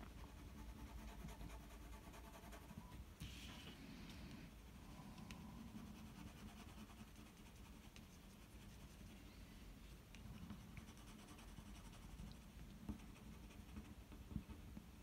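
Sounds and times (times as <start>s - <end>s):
pencil scratching on paper: 0.2s - 2.8s, 5.6s - 9.1s, 10.6s - 12.2s, 12.9s - 14.6s.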